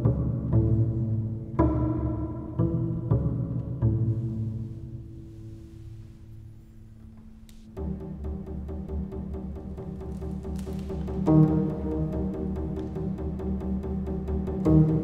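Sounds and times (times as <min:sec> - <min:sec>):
bowed double bass: 0:00.0 - 0:15.0.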